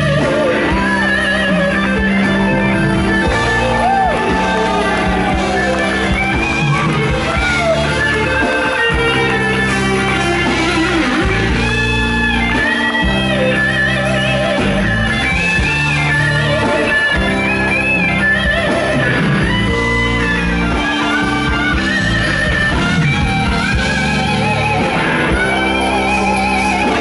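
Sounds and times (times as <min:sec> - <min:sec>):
blues band playing: 0:00.0 - 0:27.0
electric guitar solo: 0:00.0 - 0:27.0.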